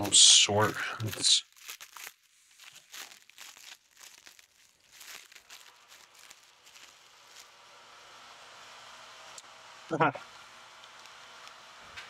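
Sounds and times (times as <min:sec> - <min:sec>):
plastic bag crinkling: 0:00.0 - 0:07.6.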